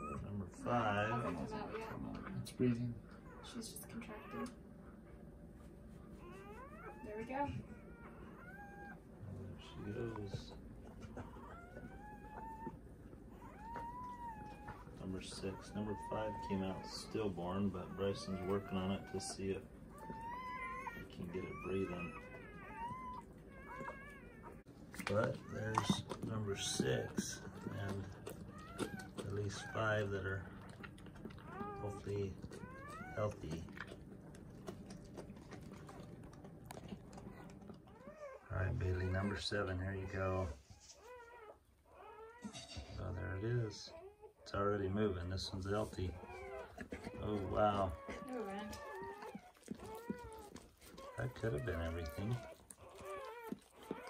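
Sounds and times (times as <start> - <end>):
puppy high-pitched squealing cries: 11.2 - 30.2, 31.3 - 33.5, 40.8 - 43.2, 46.1 - 54.0.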